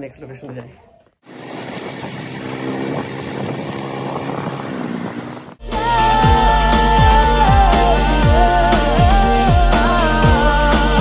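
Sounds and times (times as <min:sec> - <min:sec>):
motorcycle engine cruising: 0:01.3 - 0:11.0.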